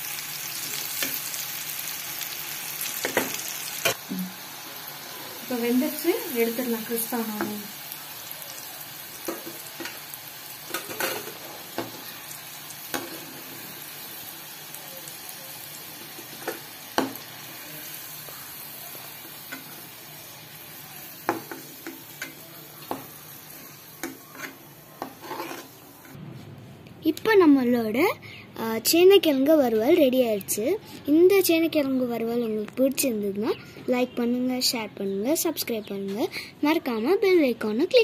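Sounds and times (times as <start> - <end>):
food deep-frying in oil: 0.0 - 26.2.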